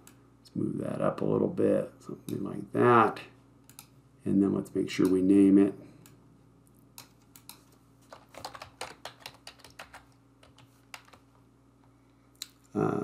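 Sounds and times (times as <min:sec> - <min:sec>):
computer keyboard typing: 0:07.0 - 0:11.3.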